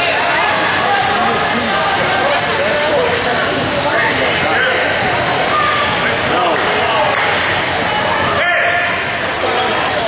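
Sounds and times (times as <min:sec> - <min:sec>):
voices calling out: 0:00.0 - 0:10.0.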